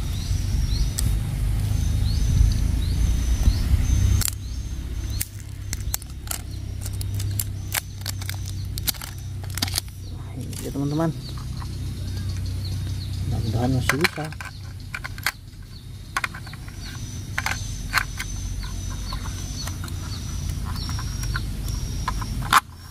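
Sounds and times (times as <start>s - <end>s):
low rumble: 0.0s - 22.6s
batteries and plastic holder clicking: 5.1s - 11.7s, 13.8s - 22.9s.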